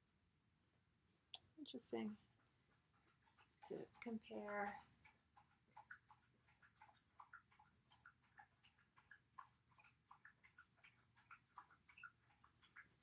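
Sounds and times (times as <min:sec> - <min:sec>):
dog gnawing on chew bone: 0:02.6 - 0:13.0.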